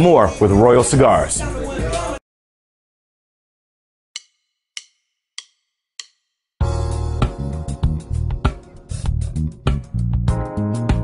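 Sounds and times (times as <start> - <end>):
sharp percussion clicks: 4.2 - 6.2.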